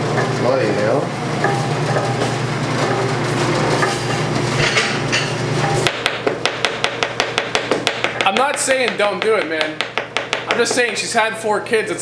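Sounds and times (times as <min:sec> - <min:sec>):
stand mixer humming: 0:00.0 - 0:11.0
knife chopping on cutting board: 0:05.8 - 0:11.0.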